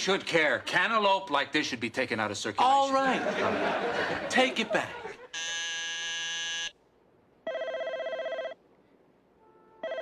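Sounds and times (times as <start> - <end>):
telephone ringing electronically: 7.5 - 8.6.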